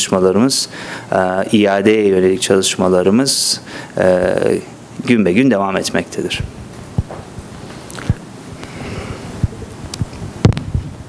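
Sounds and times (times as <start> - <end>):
low room hum: 0.0 - 11.0
soft low thumps: 6.4 - 7.5.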